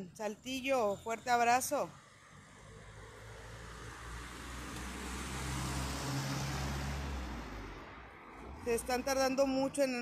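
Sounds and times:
motor vehicle passing: 0:01.8 - 0:10.0.

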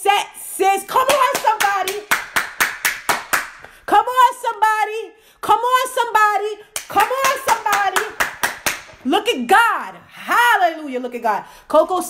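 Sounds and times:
woman speaking: 0:00.0 - 0:02.1, 0:03.9 - 0:08.2, 0:09.0 - 0:12.0
woman clapping hands: 0:01.0 - 0:03.8, 0:06.8 - 0:09.0.

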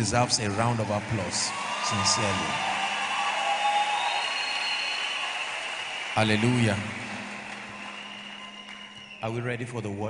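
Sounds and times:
congregation applauding: 0:00.0 - 0:09.8.

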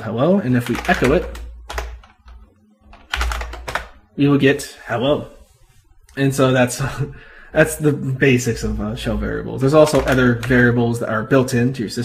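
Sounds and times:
keyboard typing: 0:00.4 - 0:04.2, 0:08.6 - 0:10.8.

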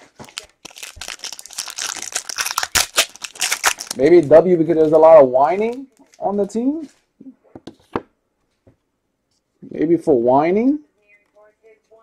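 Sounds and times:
plastic wrappers crinkling and tearing: 0:00.0 - 0:06.3.

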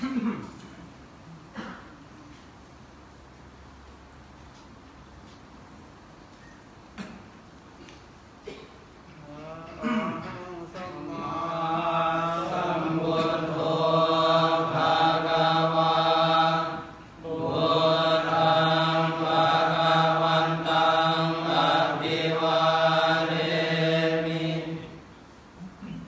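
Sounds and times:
monks chanting in unison: 0:10.6 - 0:25.0.

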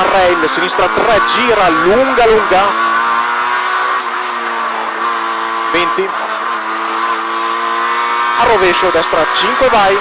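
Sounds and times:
car engine pulling at steady revs: 0:00.0 - 0:10.0.

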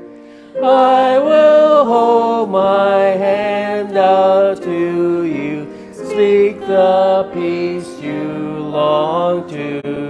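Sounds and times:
voices singing a slow hymn: 0:00.0 - 0:10.0.

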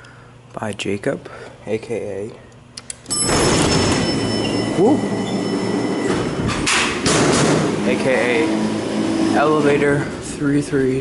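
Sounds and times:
freight elevator doors running: 0:03.1 - 0:11.0.

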